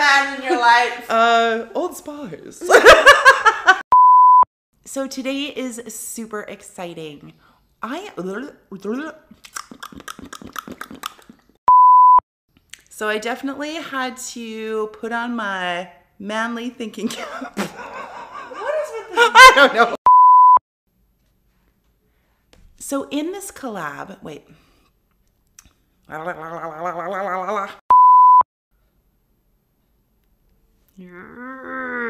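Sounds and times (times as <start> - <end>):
electronic censor bleep: 3.9 - 4.5, 11.7 - 12.2, 20.1 - 20.6, 27.9 - 28.5.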